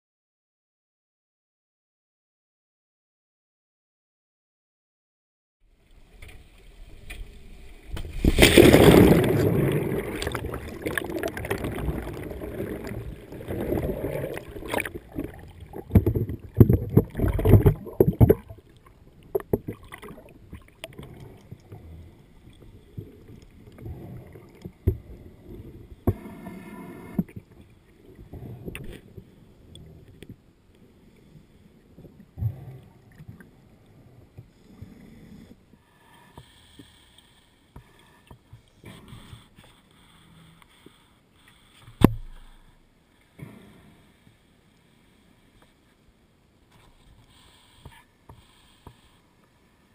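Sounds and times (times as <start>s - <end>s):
water splashing and gurgling: 5.9s - 30.0s
water rushing: 6.8s - 21.6s.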